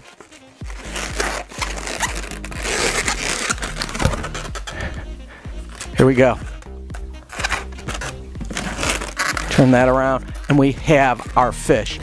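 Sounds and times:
balloons scraping together: 0.0 - 11.4
background music: 0.0 - 12.0.

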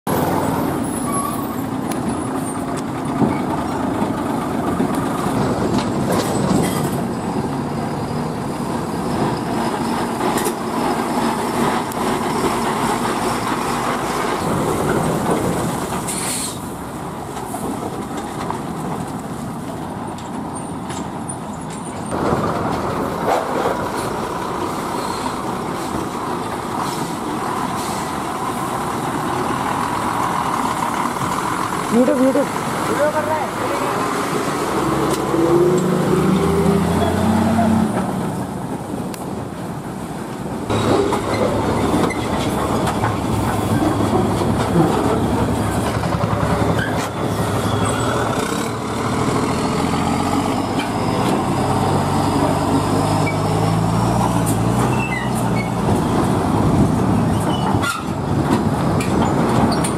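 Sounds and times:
lorry diesel engines running: 0.1 - 59.9
tyres rolling: 0.1 - 59.9
short sharp hiss: 16.1 - 16.7.

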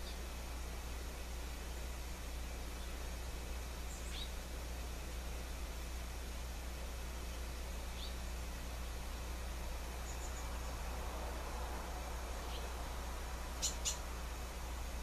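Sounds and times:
background hiss: 0.0 - 15.0
low electrical hum: 0.0 - 15.0.

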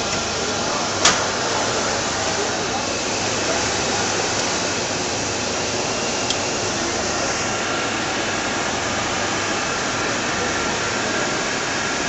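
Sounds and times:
paper-cutting machine rushing hiss: 0.0 - 12.0.

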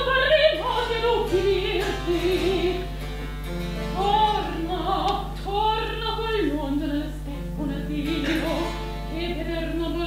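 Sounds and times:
person singing with vibrato: 0.0 - 3.0, 3.9 - 10.0.

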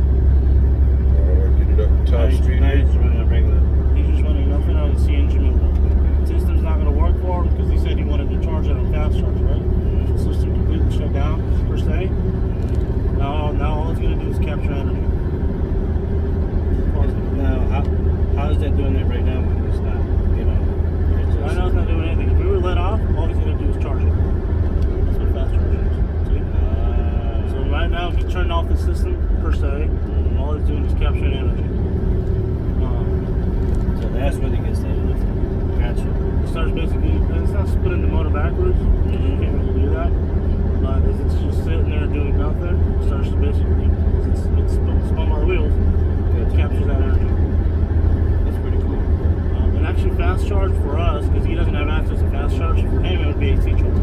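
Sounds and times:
truck engine and road noise: 0.0 - 54.0
faint talking: 1.0 - 12.1.

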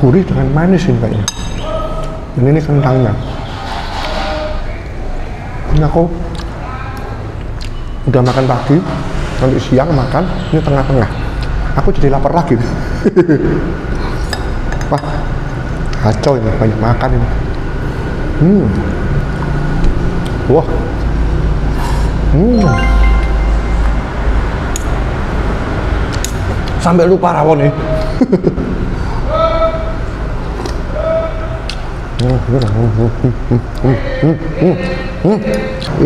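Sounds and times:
man humming while eating: 32.2 - 36.0.

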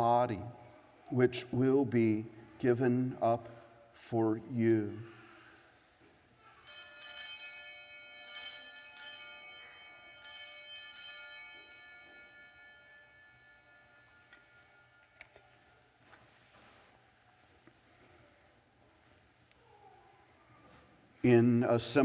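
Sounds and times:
altar bells jangling: 6.6 - 16.0.

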